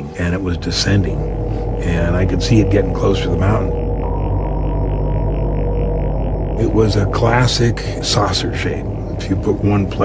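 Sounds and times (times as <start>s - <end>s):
ambient synthesizer drone: 0.0s - 10.0s.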